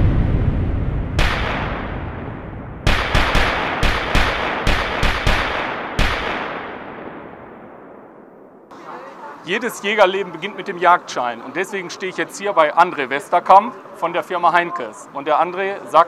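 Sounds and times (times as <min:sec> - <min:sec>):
deep boom: 0:00.0 - 0:04.6
gunshots with echo: 0:01.2 - 0:08.3.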